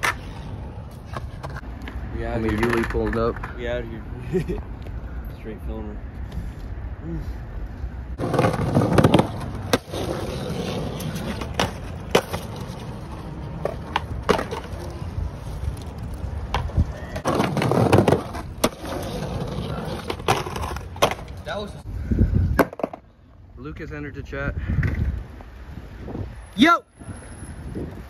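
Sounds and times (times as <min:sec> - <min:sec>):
skateboard clacking on ground: 0:00.0 - 0:03.8, 0:08.2 - 0:21.5, 0:22.6 - 0:23.1
skateboard wheels rolling on concrete: 0:00.0 - 0:28.0.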